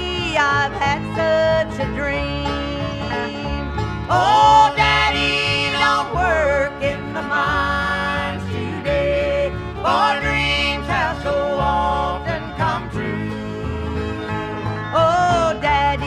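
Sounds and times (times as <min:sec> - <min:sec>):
acoustic guitar: 0:00.0 - 0:16.0
banjo: 0:00.0 - 0:16.0
sliding lead melody: 0:00.0 - 0:16.0.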